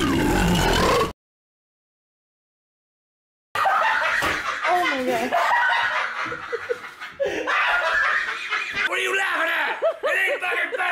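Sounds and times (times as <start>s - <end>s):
snickering and chuckling laughter: 3.6s - 8.9s.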